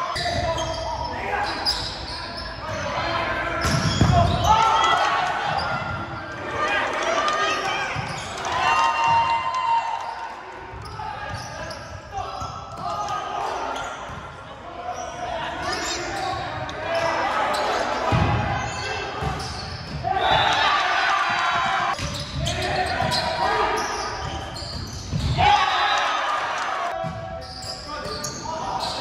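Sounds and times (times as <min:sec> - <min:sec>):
sneakers squeaking on hardwood floor: 0:00.0 - 0:06.4, 0:07.9 - 0:08.4, 0:10.8 - 0:20.6, 0:21.9 - 0:25.5, 0:27.0 - 0:29.0.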